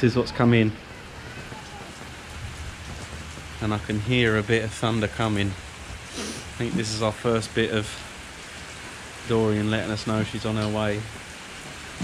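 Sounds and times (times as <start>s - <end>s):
rain falling on pool and tiles: 0.0s - 12.0s.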